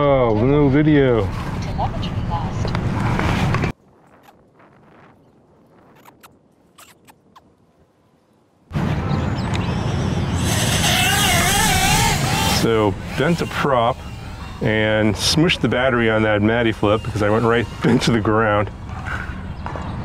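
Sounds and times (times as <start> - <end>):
small drone motors whining: 9.5 - 19.4.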